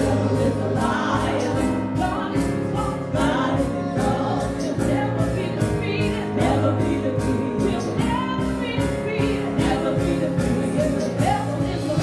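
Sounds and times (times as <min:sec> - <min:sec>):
group singing gospel song: 0:00.0 - 0:12.0
steady beat: 0:00.0 - 0:12.0.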